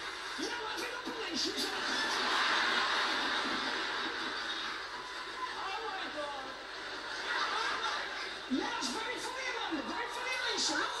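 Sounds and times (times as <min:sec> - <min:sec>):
audience applause and laughter: 0:00.0 - 0:08.8.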